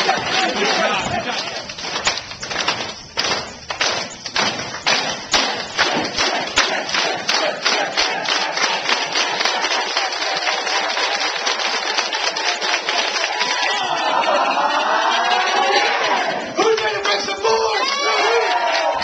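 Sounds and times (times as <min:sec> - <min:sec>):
crowd voices: 0:00.0 - 0:19.0
group clapping hands: 0:00.0 - 0:19.0.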